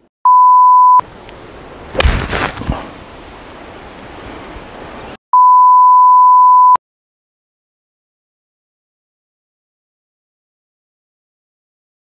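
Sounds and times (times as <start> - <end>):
electronic beeps: 0.3 - 1.0, 5.4 - 6.8.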